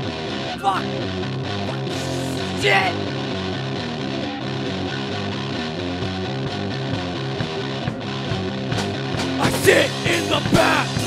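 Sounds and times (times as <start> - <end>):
instrumental rock music: 0.0 - 11.0.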